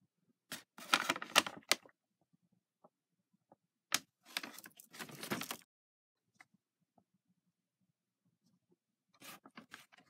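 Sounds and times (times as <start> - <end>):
paper bag rustling and crinkling: 0.5 - 1.8, 4.2 - 5.7.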